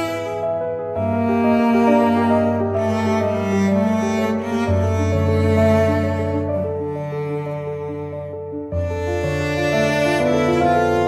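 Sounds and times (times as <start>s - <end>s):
bowed strings music: 0.0s - 11.0s.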